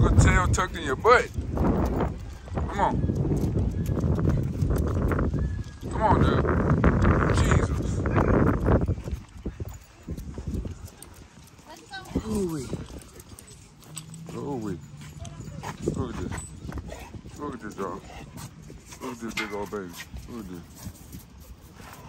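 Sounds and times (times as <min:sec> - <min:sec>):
claws clicking on concrete: 0:01.2 - 0:05.9, 0:08.4 - 0:14.3.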